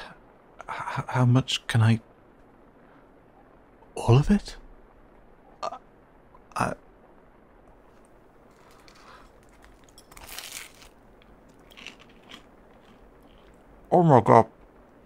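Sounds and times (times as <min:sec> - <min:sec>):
soft chewing: 0:07.9 - 0:13.9
crunchy pizza bite: 0:08.5 - 0:13.7.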